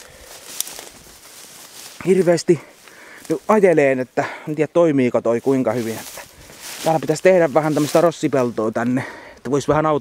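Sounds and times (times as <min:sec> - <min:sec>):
rustling through tall grass: 0:00.0 - 0:09.3.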